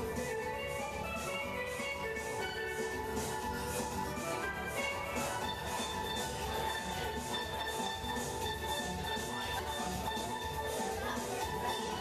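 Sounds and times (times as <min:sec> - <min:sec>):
steel pan music with beat: 0:00.0 - 0:12.0.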